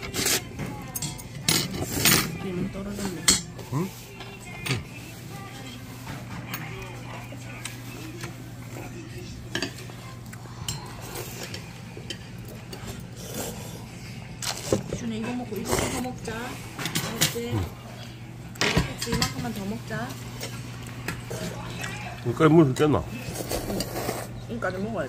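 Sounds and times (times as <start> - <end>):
chopsticks clinking on metal bowls: 0.0 - 4.8, 5.6 - 13.4.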